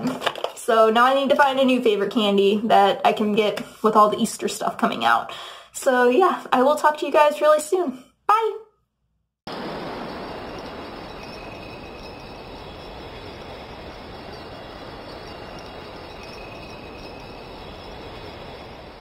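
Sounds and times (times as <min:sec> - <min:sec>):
steady rushing noise: 0:09.5 - 0:19.0.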